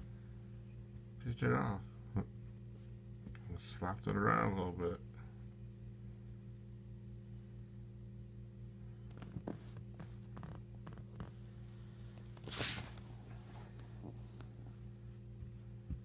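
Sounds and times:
low electrical hum: 0.0s - 16.0s
faint scuffs: 12.2s - 14.7s.

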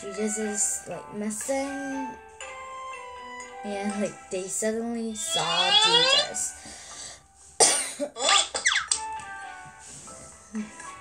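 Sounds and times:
child coughing: 7.6s - 8.8s.

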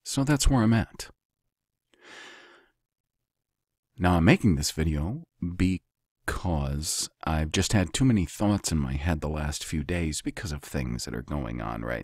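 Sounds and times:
man breathing: 1.9s - 2.8s.

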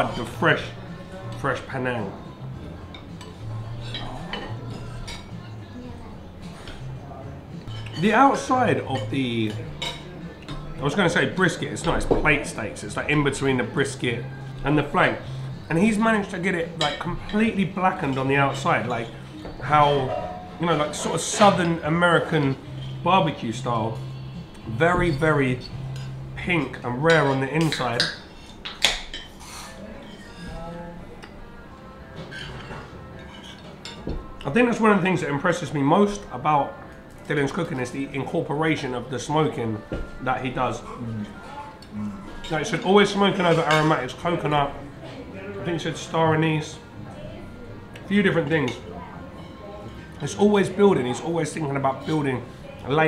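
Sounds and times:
cutlery clinking against dishes: 2.8s - 5.8s, 6.4s - 8.2s, 9.0s - 12.6s, 15.9s - 23.1s, 25.0s - 34.9s, 39.8s - 46.2s, 49.4s - 53.0s
cutlery clinking on ceramic plates: 9.0s - 10.7s, 32.2s - 34.6s, 40.8s - 44.2s.

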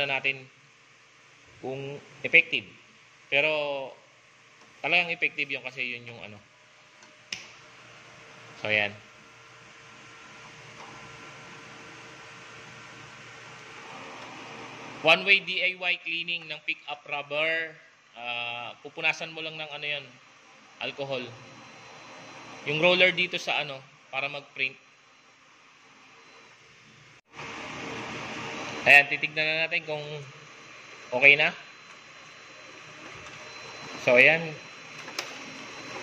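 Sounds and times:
printer fan and motors whirring: 3.2s - 17.5s, 18.2s - 36.0s.

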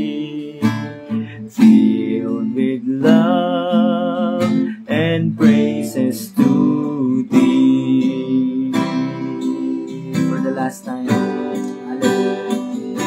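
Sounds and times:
acoustic guitar strumming: 0.0s - 13.0s
man singing: 0.0s - 13.0s.

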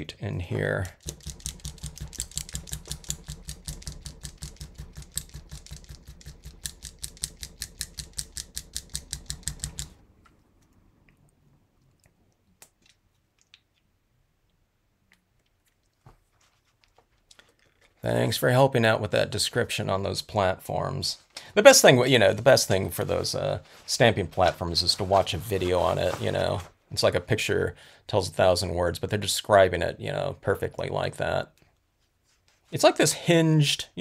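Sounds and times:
paint pen ball rattling: 0.8s - 10.0s.

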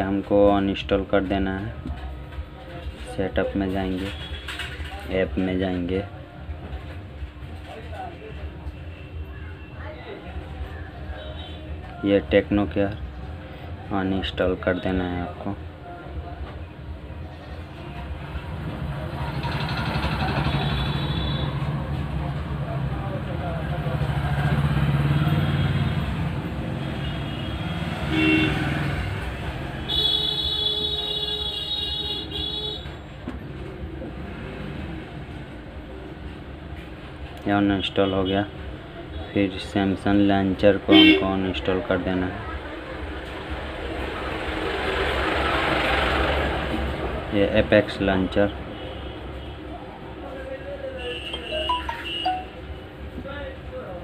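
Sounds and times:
vehicle rumbling past: 18.2s - 27.0s.

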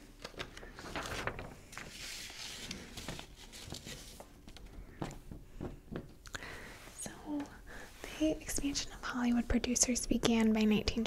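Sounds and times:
woman whispering: 6.9s - 11.0s.

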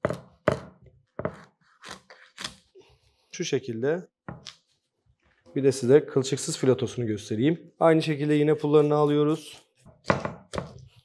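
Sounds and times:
knife chopping on cutting board: 0.0s - 1.5s, 9.9s - 10.8s.

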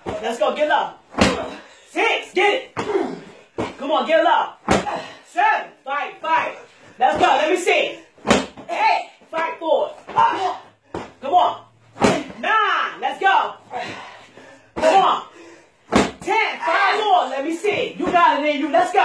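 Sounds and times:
medicine ball slamming on concrete: 15.9s - 16.3s
person talking: 16.2s - 19.0s.

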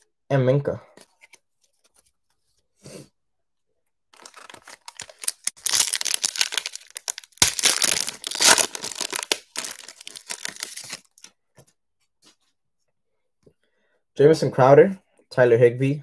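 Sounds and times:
foil wrapper tearing and crinkling: 4.2s - 11.3s.

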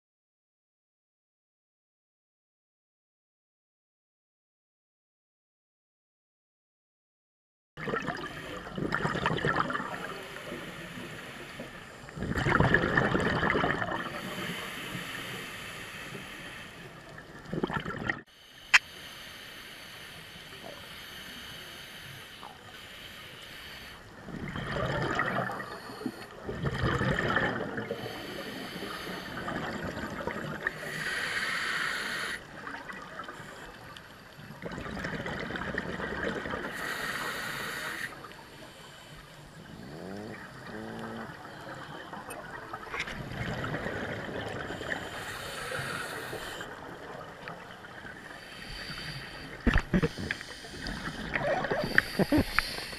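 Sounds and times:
underwater regulator bubbling: 7.8s - 10.1s, 12.2s - 14.3s, 24.4s - 32.8s, 48.5s - 52.9s.

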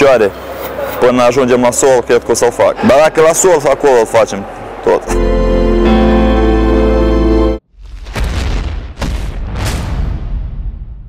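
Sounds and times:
sustained chord over deep bass: 5.0s - 7.6s.

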